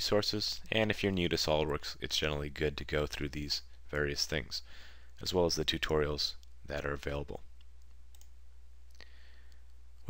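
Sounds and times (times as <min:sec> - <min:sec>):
computer mouse click: 0:07.6 - 0:08.4.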